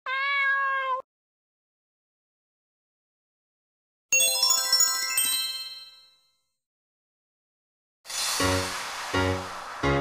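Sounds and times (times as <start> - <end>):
cat meow: 0.0 - 1.1.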